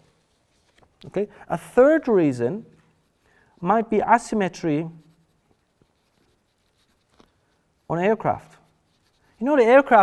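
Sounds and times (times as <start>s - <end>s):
pen scratching on paper: 2.9s - 10.0s.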